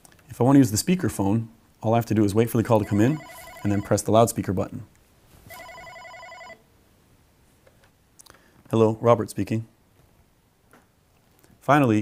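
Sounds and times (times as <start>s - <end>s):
desk phone trilling ring: 2.8s - 4.1s, 5.5s - 6.6s.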